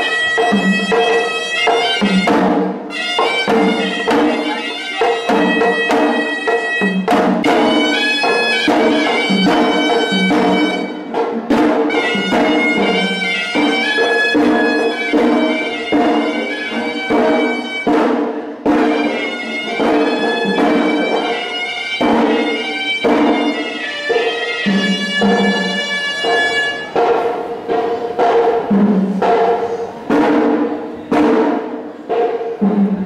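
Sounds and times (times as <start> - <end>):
shrill reed pipe melody: 0.0 - 27.8
drum strikes: 0.0 - 33.0.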